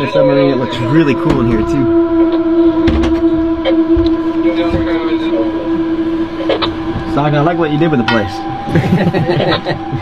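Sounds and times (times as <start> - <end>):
steady machine hum: 0.0 - 10.0
low knocks: 1.0 - 7.2.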